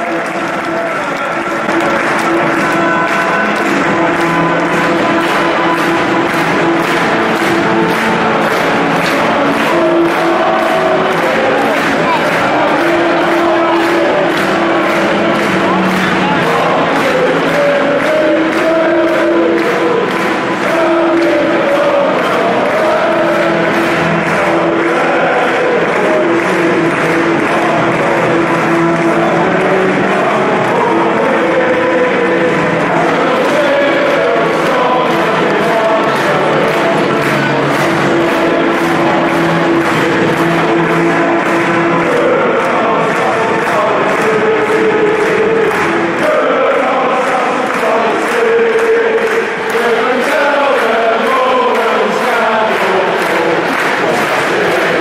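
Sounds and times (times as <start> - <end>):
stadium crowd singing in unison: 0.0 - 55.0.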